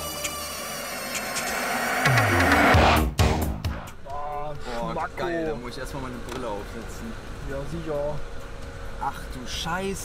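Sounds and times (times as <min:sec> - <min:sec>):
car engine rumble: 0:00.4 - 0:10.0
men talking: 0:04.0 - 0:10.0.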